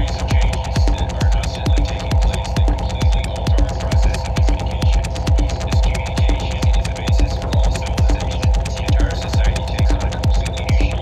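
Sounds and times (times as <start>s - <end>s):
droning hum: 0.0s - 11.0s
hi-hat ticks: 0.0s - 11.0s
kick drum: 0.0s - 11.0s.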